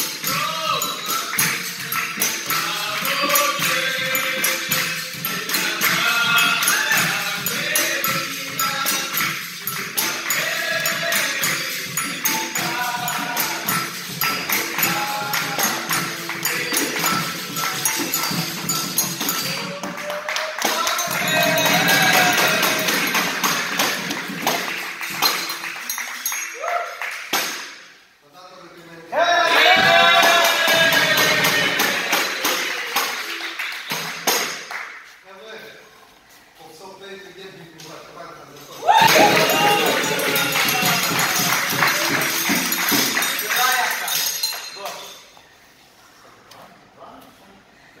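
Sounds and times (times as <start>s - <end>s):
berimbau: 0.0s - 19.8s
drumming: 0.0s - 25.9s, 29.5s - 34.7s, 38.8s - 44.1s
hand clapping: 0.0s - 28.0s, 29.5s - 35.2s, 38.9s - 45.2s
pandeiro jingles and beats: 0.0s - 28.1s, 29.4s - 35.2s, 38.7s - 45.6s
group singing: 0.2s - 19.6s, 20.7s - 24.0s, 29.3s - 33.0s, 38.9s - 42.5s
hand drum beating: 38.9s - 43.3s.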